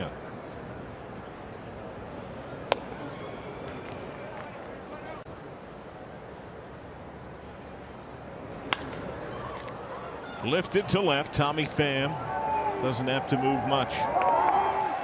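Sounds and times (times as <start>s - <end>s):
crowd ambience: 0.0s - 15.0s
bat hitting ball: 2.7s - 3.0s, 8.7s - 9.0s.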